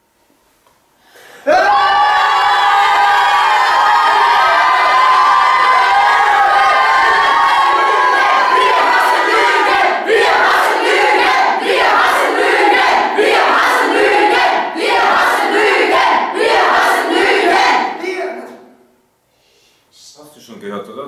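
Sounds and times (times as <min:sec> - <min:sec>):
choir singing loudly: 0:01.5 - 0:18.1.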